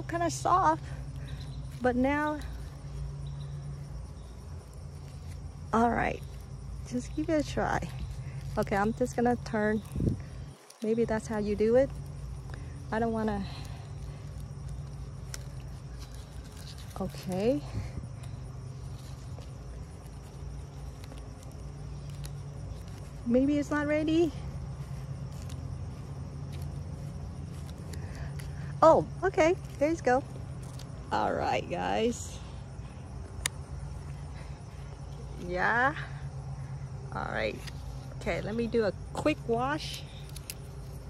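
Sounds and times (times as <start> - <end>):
leaves rustling: 0.0 - 41.0
steady low hum: 0.0 - 41.0.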